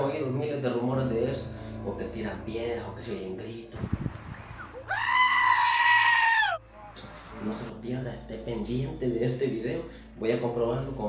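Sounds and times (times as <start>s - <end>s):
sheep screaming bleat: 4.9s - 6.6s.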